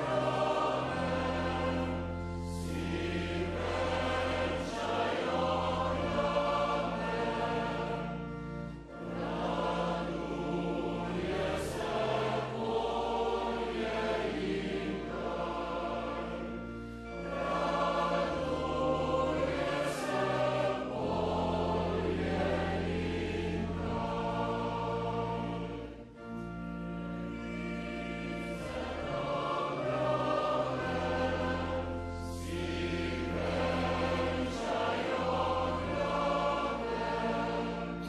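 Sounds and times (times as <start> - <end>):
male choir singing a cappella: 0.0 - 38.0.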